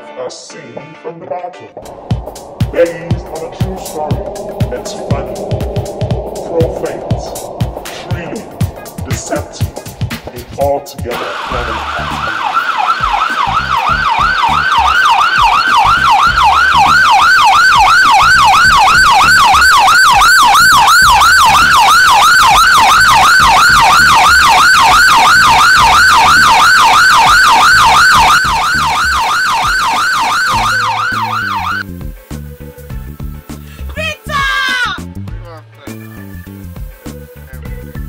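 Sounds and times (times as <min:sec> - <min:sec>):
emergency siren yelping: 0:01.8 - 0:10.5, 0:11.1 - 0:31.9.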